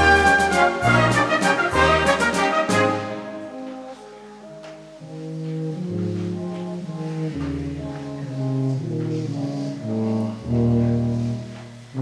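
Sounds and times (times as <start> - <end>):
slow brass music: 0.0 - 12.0.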